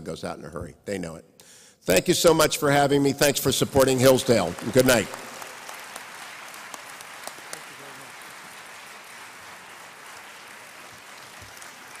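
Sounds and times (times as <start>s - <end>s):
audience applauding: 3.8s - 12.0s.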